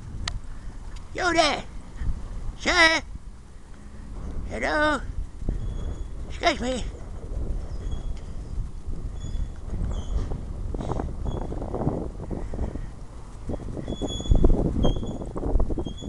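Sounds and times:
wind rumble on microphone: 0:00.0 - 0:16.0.

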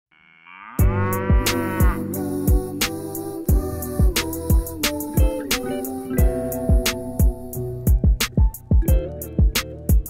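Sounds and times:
cow mooing: 0:00.1 - 0:02.2
hip hop beat: 0:00.8 - 0:10.0.

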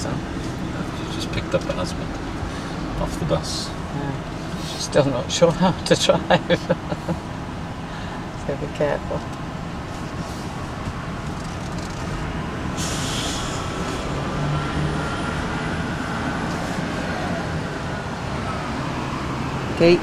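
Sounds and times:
car engine humming: 0:00.0 - 0:20.0
road noise: 0:00.0 - 0:20.0
brief hiss: 0:12.8 - 0:14.0.

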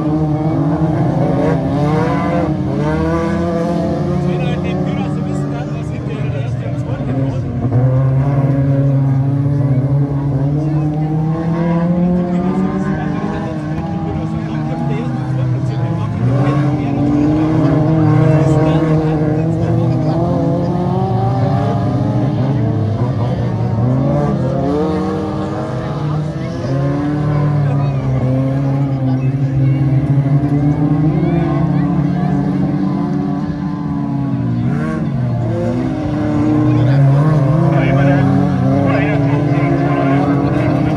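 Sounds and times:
racing car engines revving: 0:00.0 - 0:40.9.

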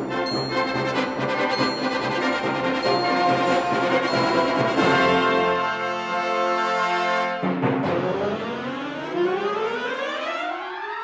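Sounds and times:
wind band rising glissando: 0:00.4 - 0:06.7.

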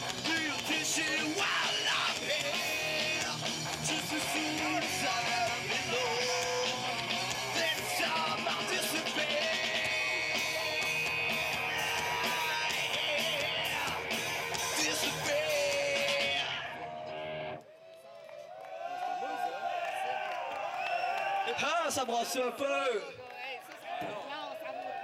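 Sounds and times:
rock band playing: 0:00.0 - 0:17.6
crowd voices talking and calling: 0:00.0 - 0:25.0.

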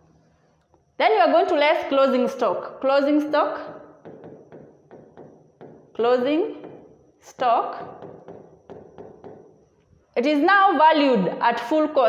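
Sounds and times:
stylus tapping on touchscreen: 0:03.6 - 0:05.9, 0:06.5 - 0:07.0, 0:07.8 - 0:09.6.

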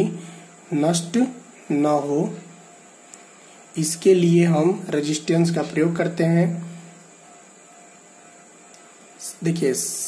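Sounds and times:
background hiss: 0:00.0 - 0:10.0
faint steady hum: 0:00.0 - 0:10.0.

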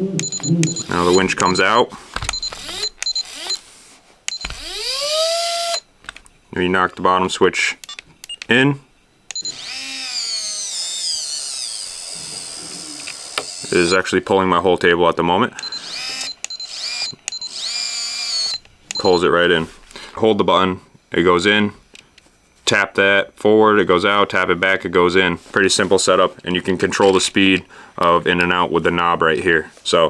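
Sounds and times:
short high beeps: 0:00.0 - 0:03.6, 0:09.3 - 0:09.6
electric winch motor whine: 0:04.3 - 0:05.8, 0:09.3 - 0:13.9, 0:15.6 - 0:18.6
clicks: 0:07.8 - 0:08.6.

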